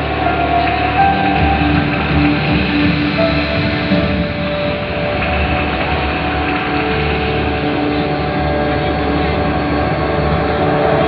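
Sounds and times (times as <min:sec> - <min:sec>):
ambient music over speakers: 0:00.0 - 0:11.0.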